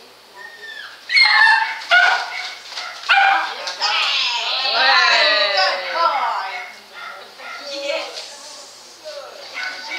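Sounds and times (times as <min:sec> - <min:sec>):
dog whining: 0:00.3 - 0:03.5
dog barking high-pitched: 0:01.1 - 0:03.6, 0:06.6 - 0:07.8, 0:09.6 - 0:09.9.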